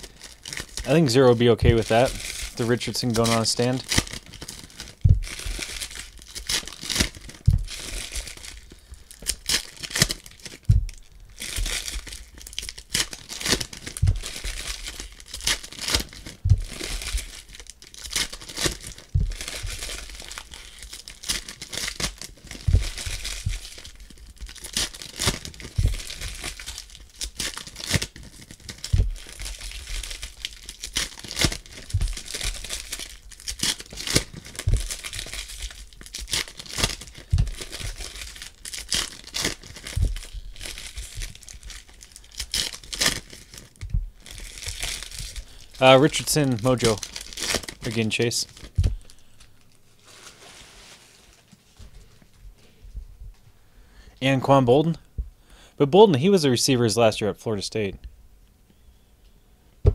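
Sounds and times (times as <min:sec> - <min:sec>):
foil wrappers crinkling and tearing: 0:00.0 - 0:52.2
low bumps: 0:01.6 - 0:02.0, 0:05.0 - 0:05.6, 0:07.4 - 0:07.8, 0:10.7 - 0:11.7, 0:14.0 - 0:14.8, 0:16.4 - 0:17.2, 0:19.1 - 0:19.9, 0:22.6 - 0:23.7, 0:25.8 - 0:26.2, 0:28.9 - 0:29.3, 0:31.9 - 0:32.4, 0:34.6 - 0:35.2, 0:37.3 - 0:38.4, 0:39.9 - 0:41.8, 0:43.8 - 0:44.5, 0:48.8 - 0:49.1, 0:52.4 - 0:53.5, 0:55.0 - 0:55.4.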